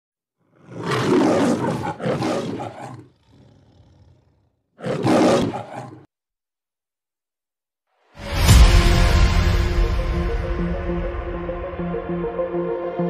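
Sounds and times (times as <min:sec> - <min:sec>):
big cat roaring: 0:00.4 - 0:06.1.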